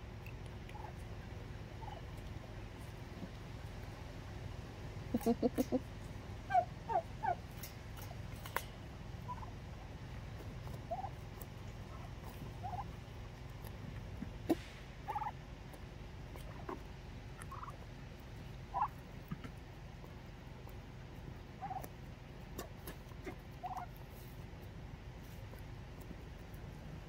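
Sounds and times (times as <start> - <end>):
turkeys calling: 0.0 - 4.2, 4.9 - 27.0.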